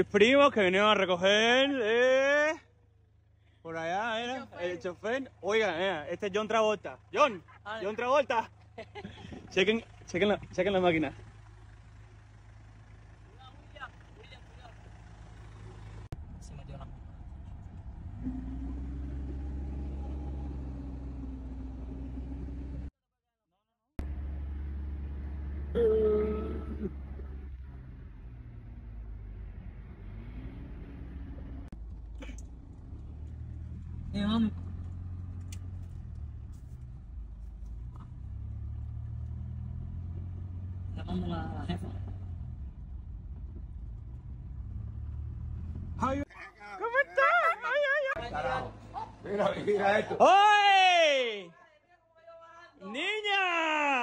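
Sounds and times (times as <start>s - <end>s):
car engine rumbling from inside: 2.7s - 23.0s, 24.0s - 50.2s.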